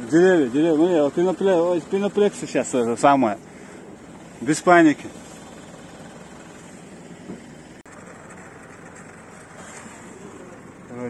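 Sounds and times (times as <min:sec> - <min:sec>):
faint truck engine running: 0:00.0 - 0:11.0.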